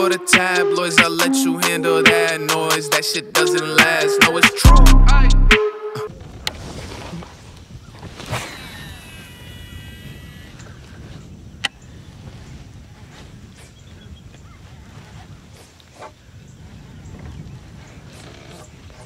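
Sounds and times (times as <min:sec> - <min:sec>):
low wind rumble: 0:06.1 - 0:19.0
reel spool whirring: 0:08.6 - 0:10.8.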